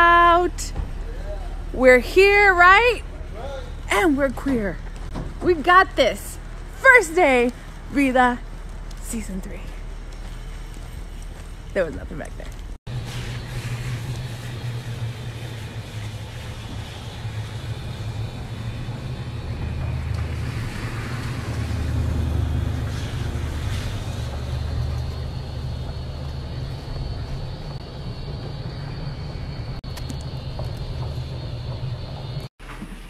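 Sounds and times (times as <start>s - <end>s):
car engine and road noise: 12.6s - 32.5s.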